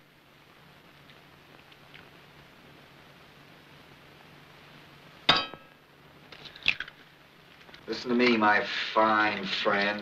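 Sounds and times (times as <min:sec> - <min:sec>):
film soundtrack hiss: 0:00.0 - 0:10.0
metallic clink: 0:05.3 - 0:05.7.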